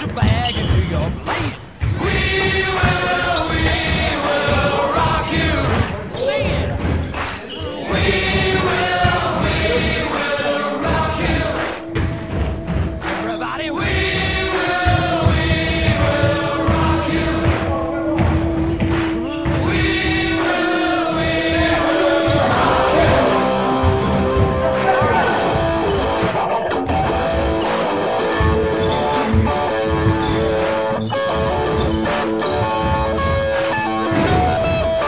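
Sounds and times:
players' voices: 0.0 - 31.2
music: 0.0 - 35.0
basketball thudding on floor: 14.1 - 19.7.

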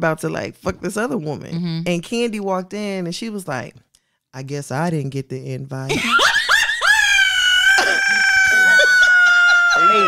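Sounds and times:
woman shrieking with laughter: 5.9 - 10.0.

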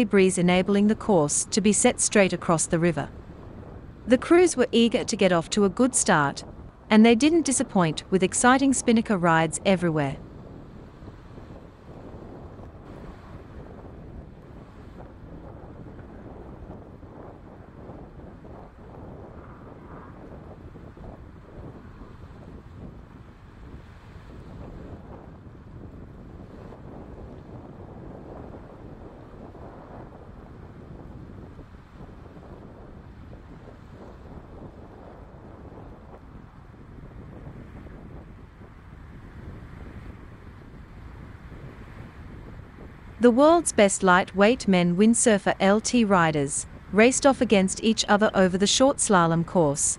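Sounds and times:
wind buffeting the microphone: 0.0 - 49.9.

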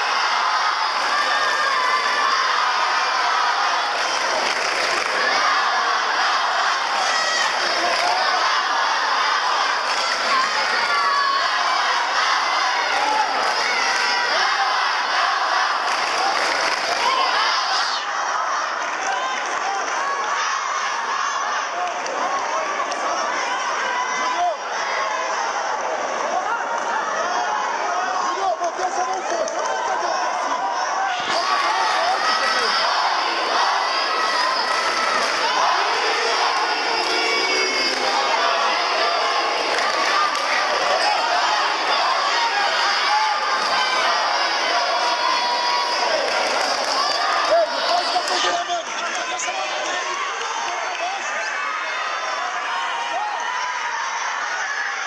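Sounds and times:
crowd shouting and cheering: 0.0 - 55.0.

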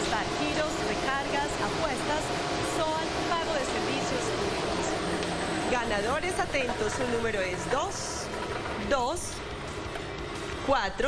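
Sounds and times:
rush of air from blowers: 0.0 - 10.8.

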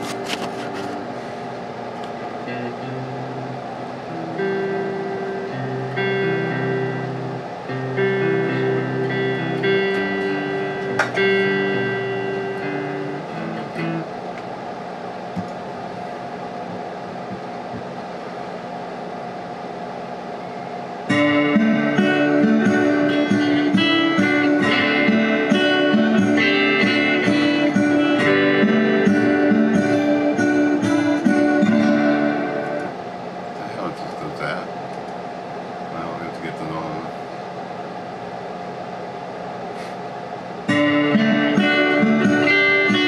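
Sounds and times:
guitar amplifier hum and hiss: 0.0 - 43.0.

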